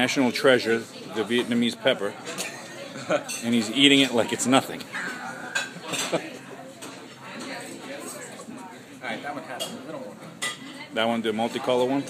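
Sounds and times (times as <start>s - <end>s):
low background voices: 0.0s - 12.0s
cutlery clinking on plates: 5.0s - 8.2s, 9.5s - 10.8s.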